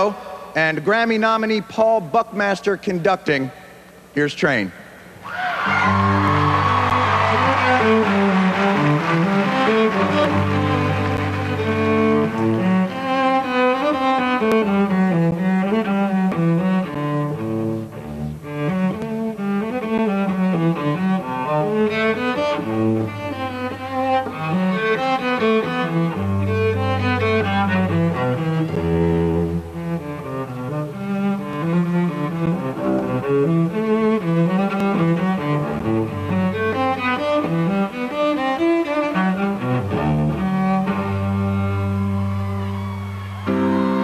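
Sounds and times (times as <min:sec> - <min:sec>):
cello and strings playing: 0:05.8 - 0:44.0.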